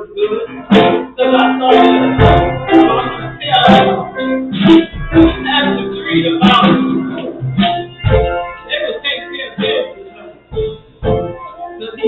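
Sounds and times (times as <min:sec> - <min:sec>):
live church music with guitar: 0:00.0 - 0:12.0
person singing: 0:00.0 - 0:12.0.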